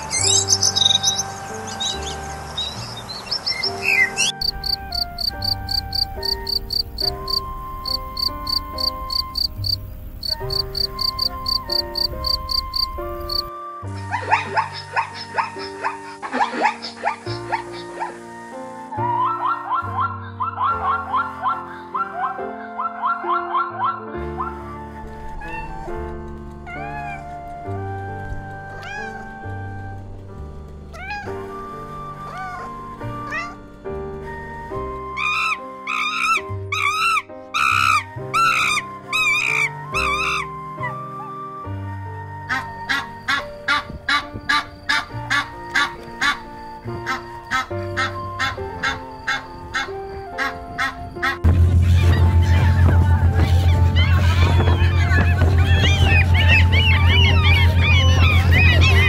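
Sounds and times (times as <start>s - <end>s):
background music with gliding tones: 0.0s - 59.0s
steady beat: 51.5s - 59.0s.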